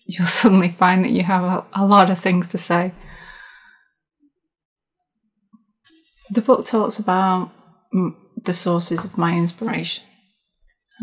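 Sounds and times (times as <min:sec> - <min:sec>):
woman's breathy sigh: 0:03.0 - 0:03.8.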